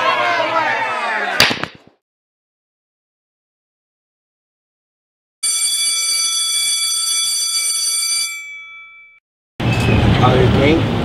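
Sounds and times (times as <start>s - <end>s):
electric school bell ringing: 5.4s - 9.2s.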